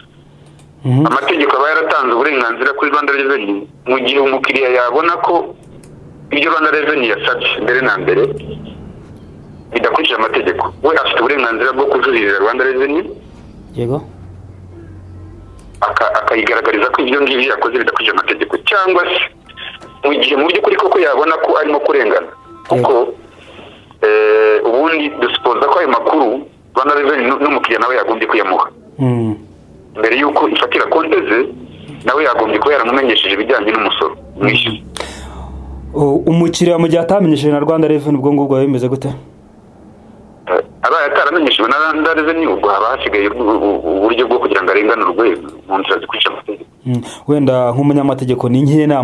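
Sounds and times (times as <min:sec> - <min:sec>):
person speaking: 0:00.7 - 0:05.7, 0:15.5 - 0:39.3
person talking: 0:00.8 - 0:05.6, 0:15.8 - 0:23.3.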